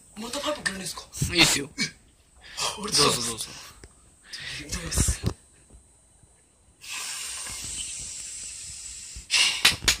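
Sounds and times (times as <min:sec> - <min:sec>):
breath hissing through pipe: 0:06.8 - 0:09.8
short loud breath bursts: 0:06.8 - 0:09.8.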